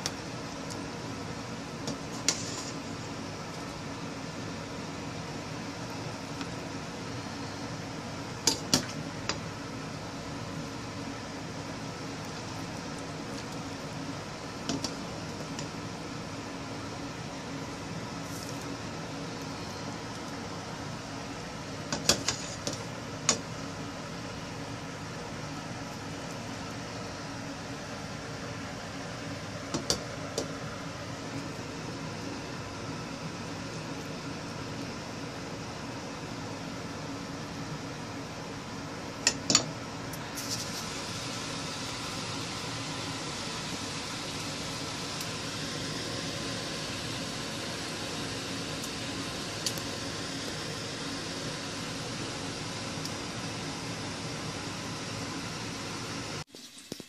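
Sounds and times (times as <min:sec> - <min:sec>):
steady hum: 0:00.0 - 0:57.0.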